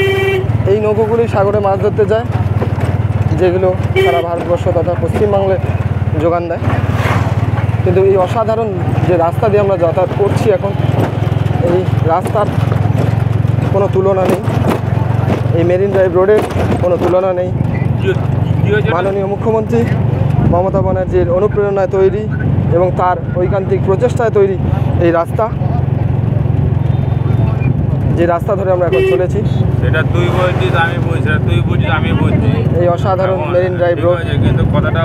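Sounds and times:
vehicle engine rumble: 0:00.0 - 0:35.0
person talking: 0:03.3 - 0:06.6, 0:11.6 - 0:12.6, 0:15.5 - 0:25.6.

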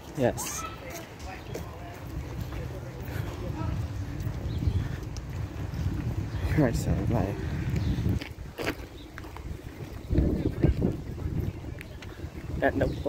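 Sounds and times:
faint voices: 0:00.0 - 0:07.8, 0:09.8 - 0:13.0
wind buffeting microphone: 0:00.2 - 0:13.0.

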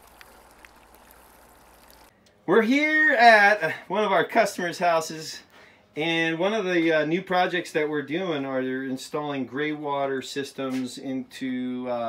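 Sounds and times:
water drips ticking: 0:00.0 - 0:02.1
water trickling from drain tube: 0:00.0 - 0:02.1.

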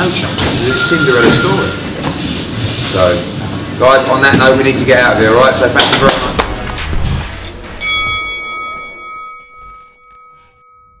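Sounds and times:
bright bell-like chime: 0:07.8 - 0:11.0.

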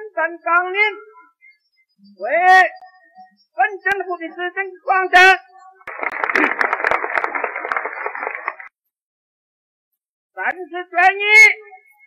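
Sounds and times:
crowd applause: 0:05.9 - 0:08.7.

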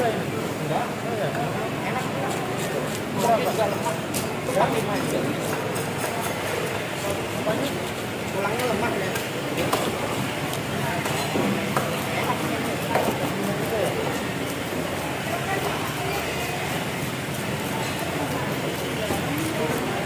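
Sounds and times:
people talking: 0:00.0 - 0:20.0.

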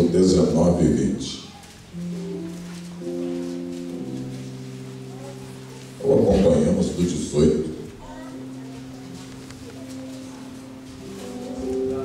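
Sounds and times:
electric keyboard chords: 0:00.0 - 0:12.0.

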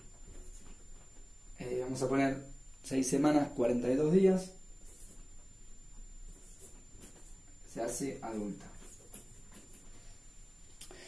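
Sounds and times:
marker writing on whiteboard: 0:06.3 - 0:07.4.

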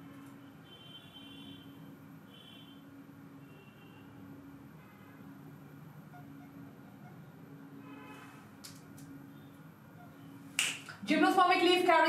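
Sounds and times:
faint steady hum: 0:00.0 - 0:12.0
finger snap: 0:10.6 - 0:11.0.

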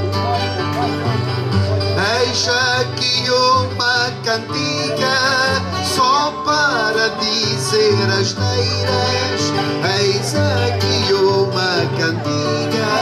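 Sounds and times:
acoustic guitar melody: 0:00.0 - 0:13.0.

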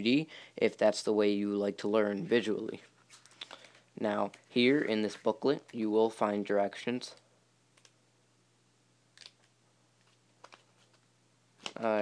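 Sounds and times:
faint low hum: 0:00.0 - 0:12.0
booklet pages turning: 0:10.0 - 0:11.8.

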